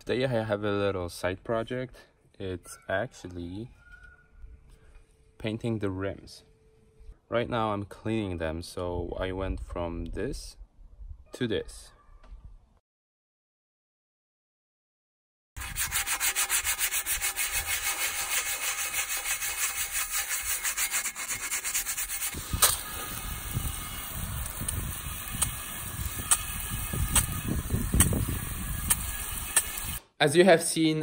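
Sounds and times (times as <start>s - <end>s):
sponge scrubbing wheel: 15.6s - 30.0s
sharp clicks: 28.0s - 28.2s.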